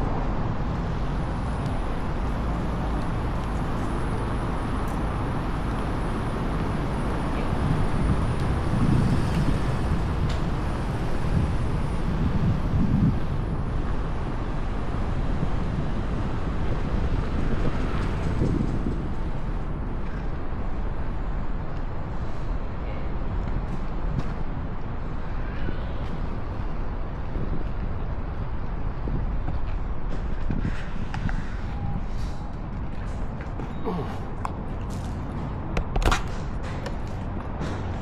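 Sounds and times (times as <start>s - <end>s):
tyre and street noise rumble: 0.0s - 38.0s
wind buffeting microphone: 0.0s - 38.0s.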